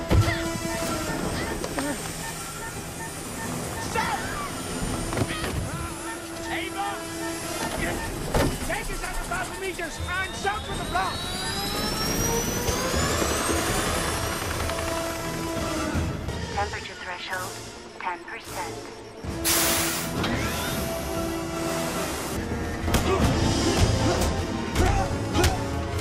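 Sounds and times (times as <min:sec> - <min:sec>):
dramatic film music: 0:00.0 - 0:26.0
helicopter turbine whine rising: 0:06.1 - 0:19.4.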